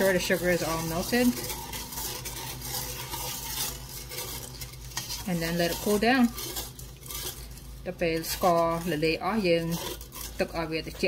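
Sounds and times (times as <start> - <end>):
spoon stirring in a metal pot: 0.0 - 11.0
steady low hum: 0.0 - 11.0.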